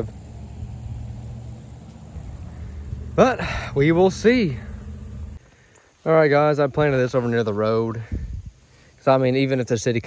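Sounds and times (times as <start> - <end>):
low steady rumble and hum: 0.0 - 5.4.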